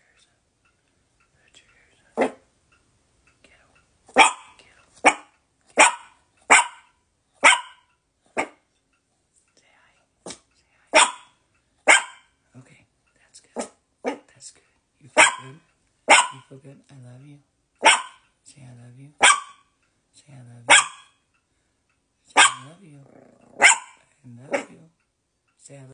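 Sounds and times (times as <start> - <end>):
small dog barking: 2.2 - 2.4, 4.1 - 8.6, 10.9 - 12.3, 13.6 - 14.3, 15.2 - 16.5, 17.8 - 18.2, 19.2 - 19.6, 20.7 - 21.1, 22.4 - 22.7, 23.5 - 24.8.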